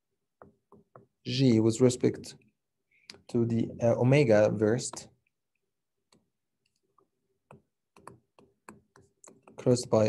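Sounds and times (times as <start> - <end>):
stylus tapping on tablet screen: 0.3 - 1.2, 6.0 - 9.8.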